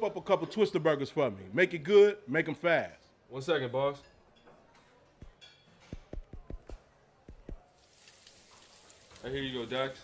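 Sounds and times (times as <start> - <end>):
burgers sizzling on a griddle: 7.8 - 10.0.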